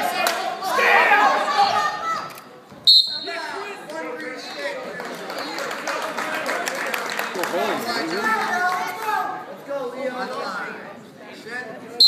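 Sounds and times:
shrill whistle blast: 2.8s - 3.3s.

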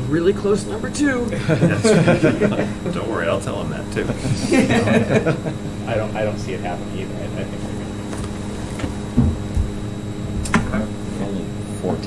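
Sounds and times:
electrical mains hum: 0.0s - 12.0s
low thuds: 7.6s - 11.1s.

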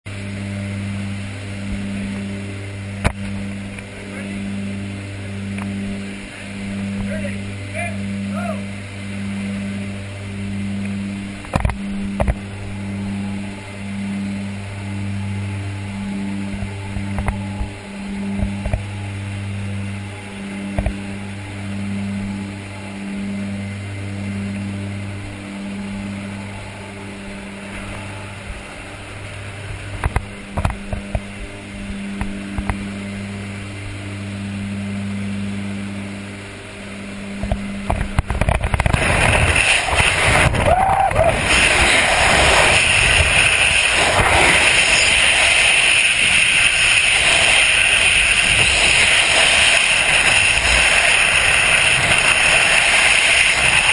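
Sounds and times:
turboprop engines droning: 0.0s - 53.9s
rush of air: 37.9s - 53.9s.

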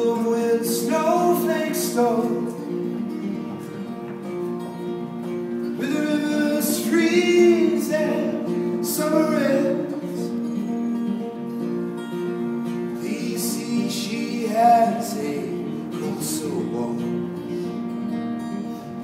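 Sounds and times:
man singing: 0.0s - 3.8s, 5.5s - 10.5s, 12.8s - 17.5s
acoustic guitar folk accompaniment: 0.0s - 19.0s.

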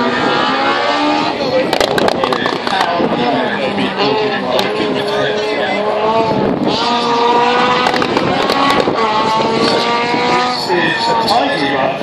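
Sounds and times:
rally car engine running: 0.0s - 12.0s
spectators talking: 0.0s - 12.0s.

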